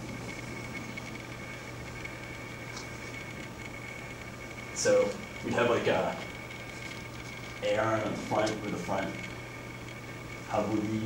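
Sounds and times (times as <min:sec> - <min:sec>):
steady low hum: 0:00.0 - 0:11.0
thin high whine: 0:00.0 - 0:11.0.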